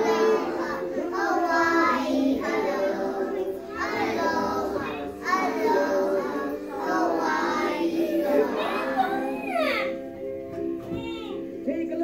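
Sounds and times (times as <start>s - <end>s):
children singing: 0.0s - 10.1s
accompanying music: 0.0s - 12.0s.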